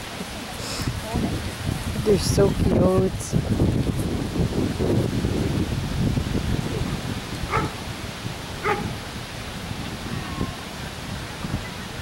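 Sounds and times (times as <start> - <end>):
wind rumble on microphone: 0.0 - 12.0
dog barking: 7.5 - 7.8, 8.6 - 9.0.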